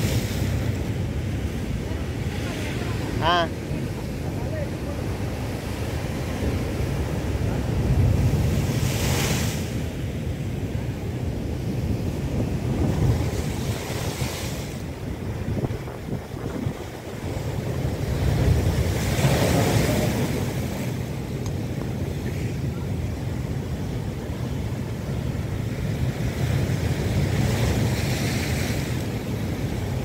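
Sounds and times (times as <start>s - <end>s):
waves crashing on rocks: 0.0s - 30.0s
wind buffeting microphone: 10.8s - 30.0s.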